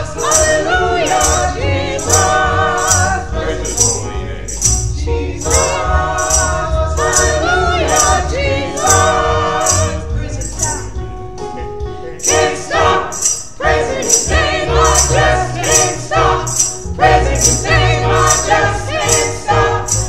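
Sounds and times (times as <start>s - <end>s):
choir singing a hymn: 0.0s - 11.1s, 12.1s - 20.0s
jingle on each beat: 0.0s - 20.0s
keyboard accompaniment: 0.0s - 20.0s.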